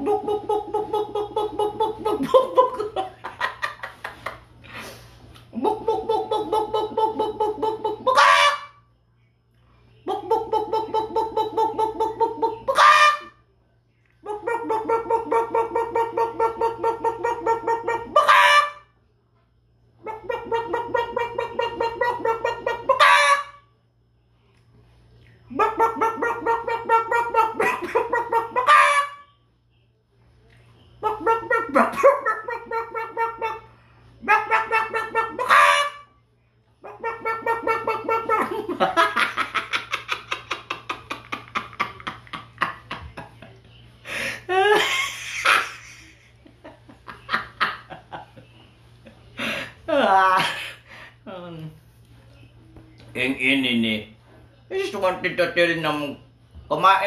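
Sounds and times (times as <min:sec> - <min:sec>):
man imitating chicken clucks: 0:00.0 - 0:03.2, 0:05.5 - 0:08.8, 0:10.1 - 0:13.3, 0:14.2 - 0:18.8, 0:20.0 - 0:23.5, 0:25.5 - 0:29.2, 0:31.0 - 0:36.0, 0:36.8 - 0:38.9
loud honking squawk: 0:08.1 - 0:08.9, 0:12.7 - 0:13.4, 0:17.4 - 0:19.0, 0:22.7 - 0:23.7, 0:25.6 - 0:29.3, 0:32.8 - 0:36.2.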